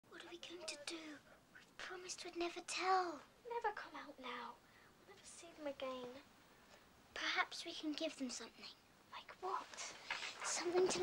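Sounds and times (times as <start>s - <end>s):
girl talking quietly: 0.1s - 6.2s, 7.1s - 11.0s.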